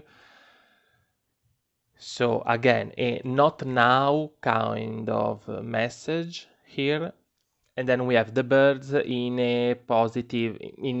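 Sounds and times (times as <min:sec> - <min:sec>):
faint exhaled breath: 0:00.0 - 0:01.0.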